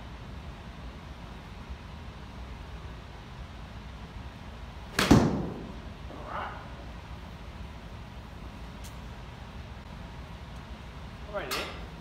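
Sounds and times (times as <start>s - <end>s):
ball hitting netting: 4.9s - 5.8s.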